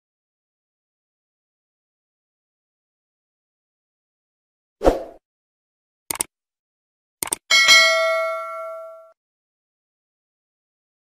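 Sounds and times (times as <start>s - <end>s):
short clicks: 6.1s - 6.3s, 7.2s - 7.4s
notification bell ding: 7.5s - 9.2s.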